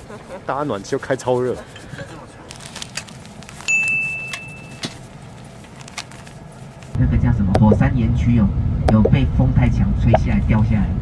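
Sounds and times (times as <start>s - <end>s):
high-pitched bell chime: 3.7s - 4.8s.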